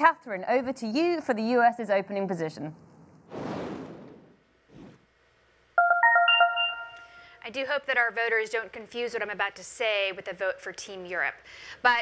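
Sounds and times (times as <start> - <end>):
electronic chime jingle: 5.8 - 7.4.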